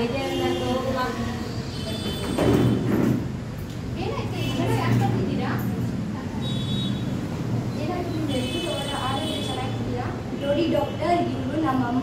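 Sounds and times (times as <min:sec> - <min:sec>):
children talking: 0:04.0 - 0:06.4.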